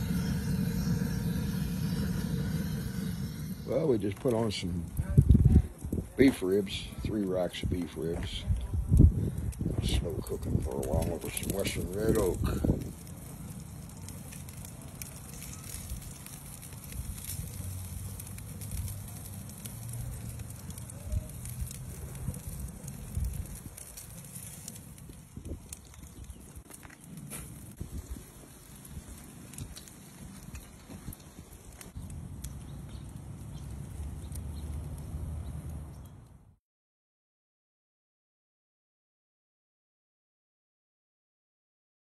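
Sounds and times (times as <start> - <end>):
logs crackling and popping: 0.0 - 36.4
fire low rumble: 0.0 - 36.6.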